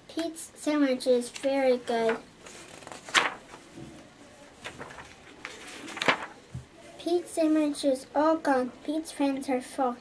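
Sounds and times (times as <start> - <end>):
paper pages turning: 1.3 - 6.7.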